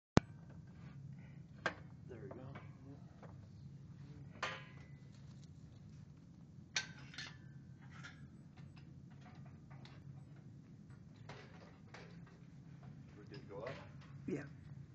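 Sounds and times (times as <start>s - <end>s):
steady low hum: 0.2s - 14.9s.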